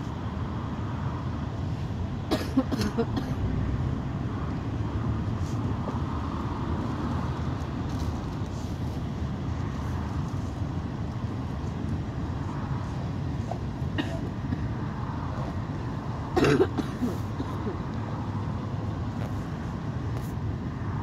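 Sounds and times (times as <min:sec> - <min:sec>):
bus engine rumble and road noise: 0:00.0 - 0:21.0
surrounding traffic: 0:00.0 - 0:21.0.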